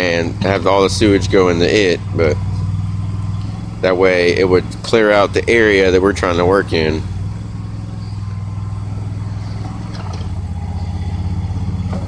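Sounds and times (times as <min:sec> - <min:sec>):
backhoe engine pulsing: 0:00.0 - 0:12.0.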